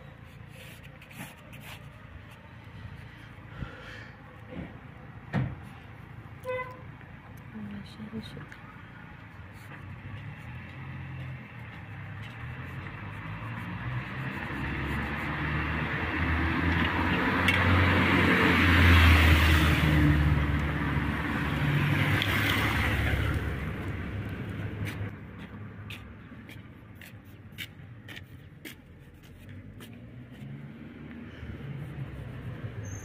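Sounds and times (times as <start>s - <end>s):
vehicle engine passing: 7.7s - 26.8s, 28.7s - 33.0s.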